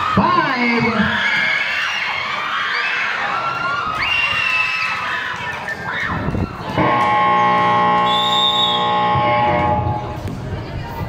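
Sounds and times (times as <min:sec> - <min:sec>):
buzzer long steady tone: 0:06.8 - 0:10.2.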